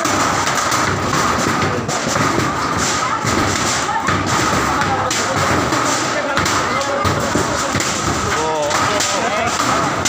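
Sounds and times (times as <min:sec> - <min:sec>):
knocks and thumps: 0:00.0 - 0:10.0
people talking and calling: 0:00.0 - 0:10.0.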